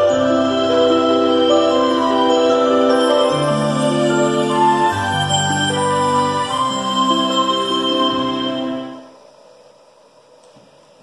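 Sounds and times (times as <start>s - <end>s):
instrumental music through speaker: 0.0s - 9.1s.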